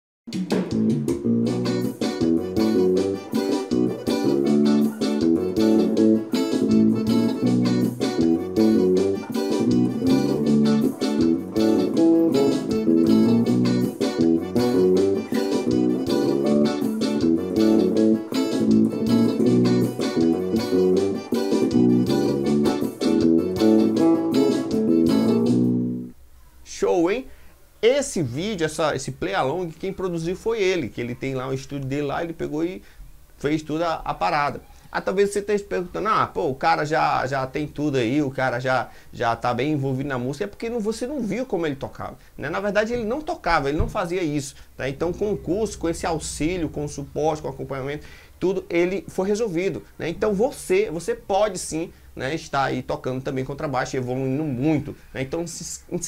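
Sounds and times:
backing track with percussion: 0.3s - 25.8s
electric bass groove: 0.3s - 26.1s, 45.0s - 48.1s.

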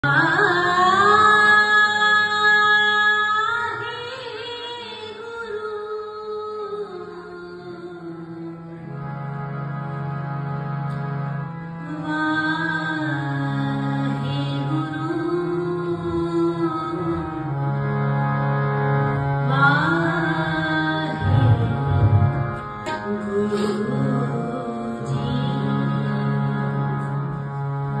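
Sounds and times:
woman singing into a microphone: 0.0s - 8.8s, 11.8s - 17.6s, 19.4s - 22.2s, 22.8s - 27.4s
held instrumental notes: 21.0s - 25.3s.

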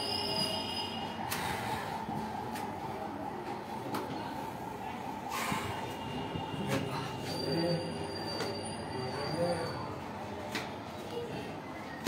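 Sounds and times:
high whistle-like tone: 0.0s - 1.3s.

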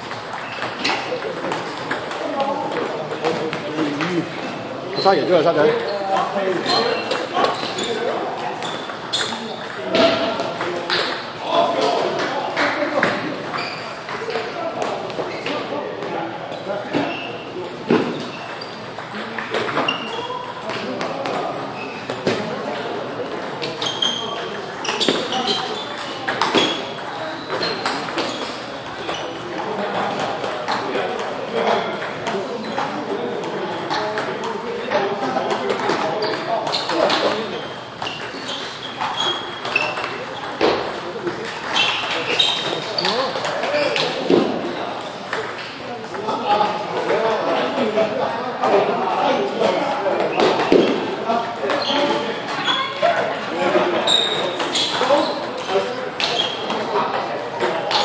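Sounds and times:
voices talking: 0.0s - 58.0s.

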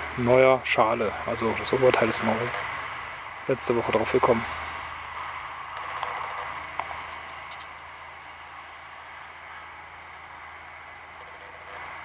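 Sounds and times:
faint low hum: 0.0s - 12.0s
outdoor background hiss: 0.0s - 12.0s.

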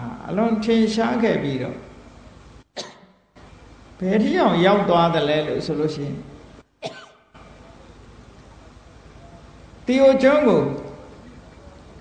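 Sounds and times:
low steady hiss: 0.0s - 12.0s
man coughing: 2.8s - 3.1s, 6.8s - 7.3s.

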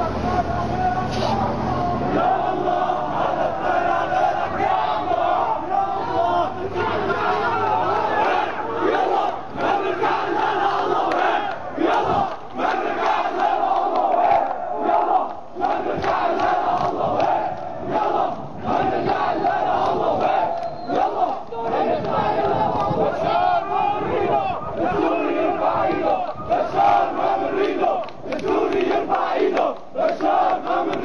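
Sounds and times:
crowd chanting and shouting: 0.0s - 31.0s.

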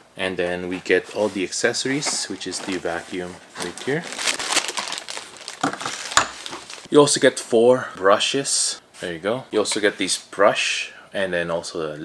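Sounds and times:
plastic wrapping crinkling: 1.2s - 6.9s.

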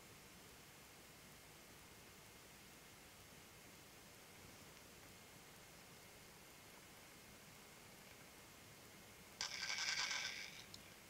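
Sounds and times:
spinning top scraping on glass: 9.4s - 10.8s.

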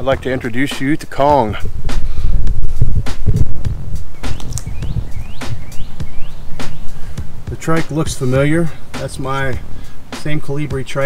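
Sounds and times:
wind buffeting microphone: 0.0s - 11.0s
small bird chirping: 4.0s - 7.3s.

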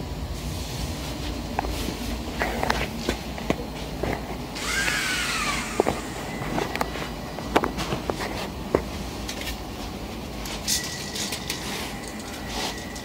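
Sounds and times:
small electric motors whirring: 4.6s - 6.9s.

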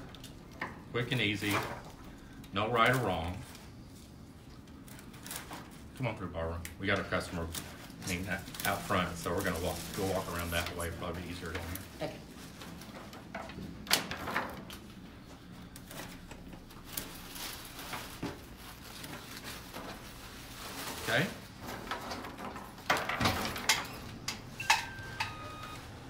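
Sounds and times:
rose stems rustling and snapping: 6.6s - 11.8s.

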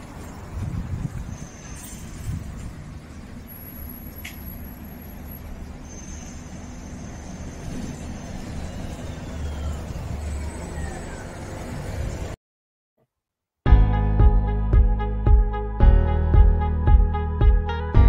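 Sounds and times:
road vehicles rumbling past: 0.0s - 12.4s.

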